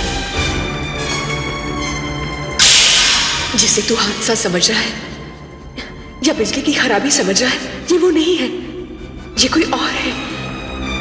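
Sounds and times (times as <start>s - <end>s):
dramatic background music: 0.0s - 11.0s
loud whoosh sound effect: 2.6s - 4.4s
woman speaking: 3.5s - 5.2s, 6.2s - 8.8s, 9.4s - 10.3s.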